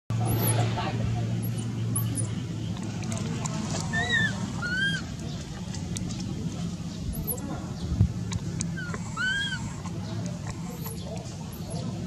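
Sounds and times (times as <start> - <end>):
steady low hum: 0.1 - 12.0
baby monkey shrill squeals: 3.9 - 5.1, 8.8 - 9.8.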